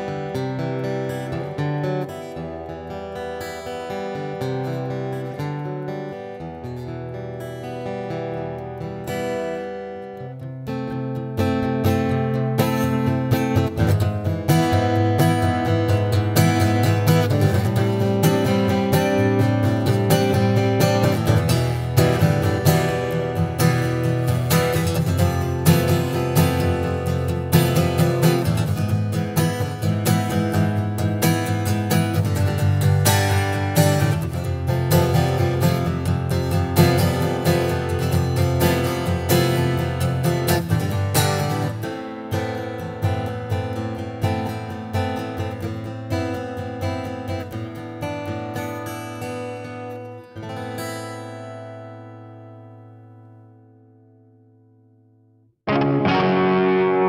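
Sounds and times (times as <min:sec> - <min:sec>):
acoustic guitar strumming: 0:00.0 - 0:55.0, 0:55.6 - 0:57.0.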